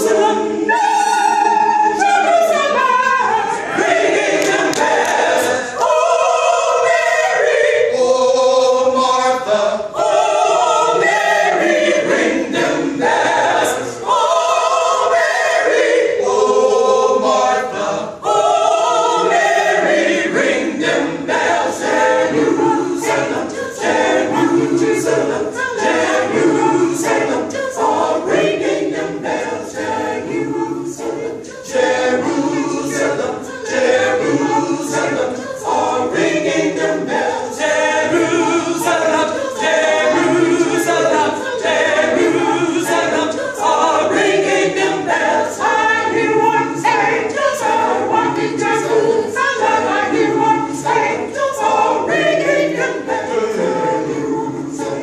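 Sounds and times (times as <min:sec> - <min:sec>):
women's choir singing a cappella: 0:00.0 - 0:55.0.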